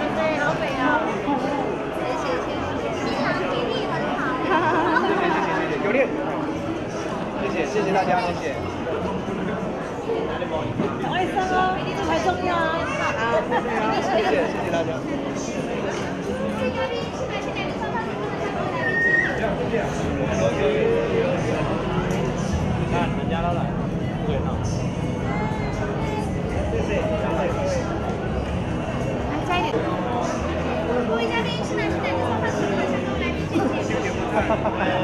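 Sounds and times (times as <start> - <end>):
overlapping chatter of people: 0.0 - 35.0.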